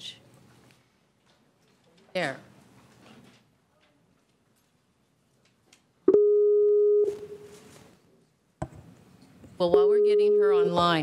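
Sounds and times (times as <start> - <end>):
telephone line tone: 6.1 - 7.4.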